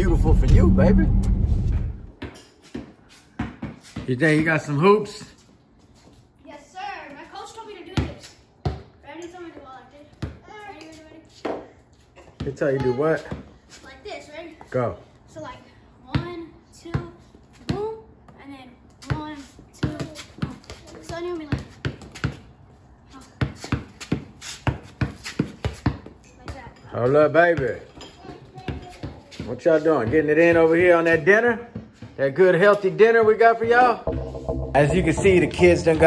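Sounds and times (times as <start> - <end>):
basketball bouncing on concrete: 2.1 - 4.4, 7.9 - 9.0, 9.6 - 11.6, 12.3 - 13.6, 16.1 - 18.4, 19.0 - 22.5, 23.2 - 34.3.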